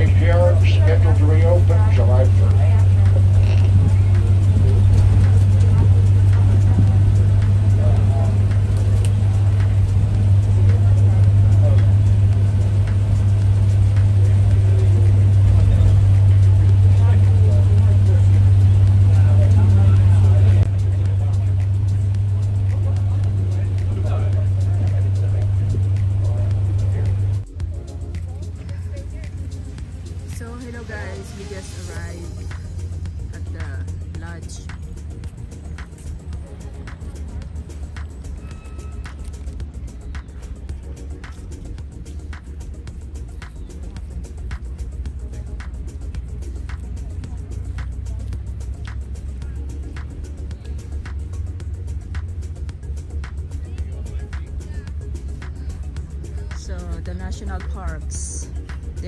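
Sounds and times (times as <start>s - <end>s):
bus engine drone: 0.0s - 59.0s
indistinct passenger voices: 0.0s - 59.0s
music: 0.0s - 59.0s.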